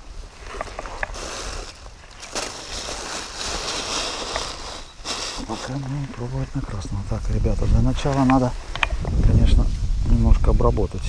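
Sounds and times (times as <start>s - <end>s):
dry grass and reeds rustling: 0.0s - 10.8s.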